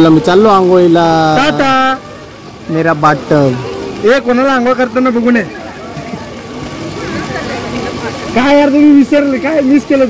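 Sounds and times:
quiet chatter: 0.0s - 10.0s.

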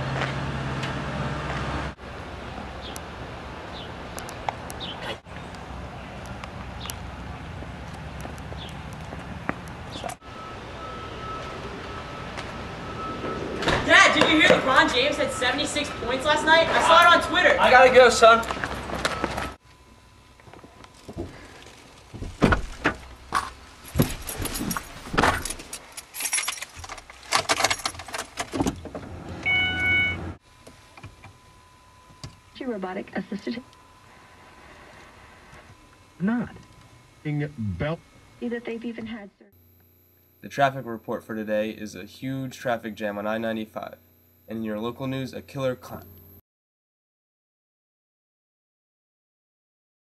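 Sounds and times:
car keys jangling: 23.9s - 28.7s
steady electronic tone: 31.4s - 41.7s.

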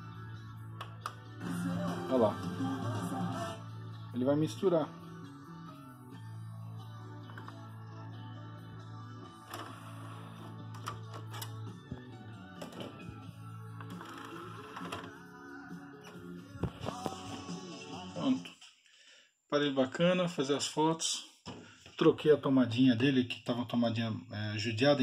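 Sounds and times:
music mixed with radio: 0.0s - 18.9s.

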